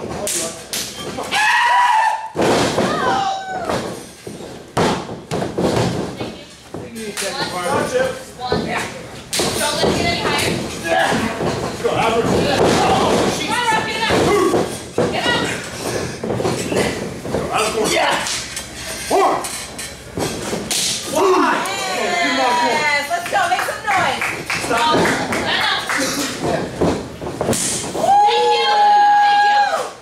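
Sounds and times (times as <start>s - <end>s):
heavy thuds and slams on mat: 2.3s - 6.9s, 8.4s - 18.1s, 26.4s - 28.3s.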